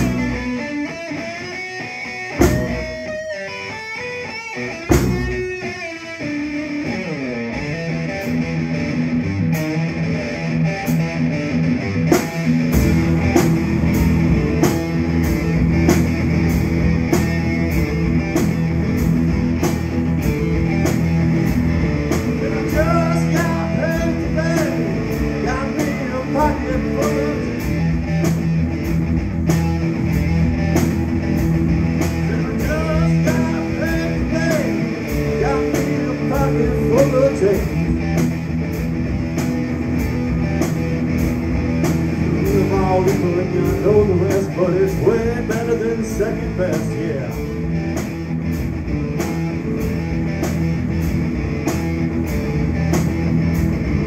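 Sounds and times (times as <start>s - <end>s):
bass drum and hi-hat: 0.0s - 0.6s, 2.4s - 3.1s, 4.9s - 5.6s, 10.9s - 54.0s
electric guitars playing blues-rock: 0.0s - 54.0s.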